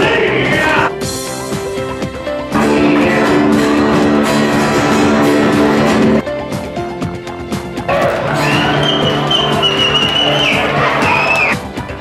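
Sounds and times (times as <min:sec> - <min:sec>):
loud dance music: 0:02.6 - 0:06.2, 0:07.9 - 0:11.6
long held high note: 0:07.9 - 0:11.6.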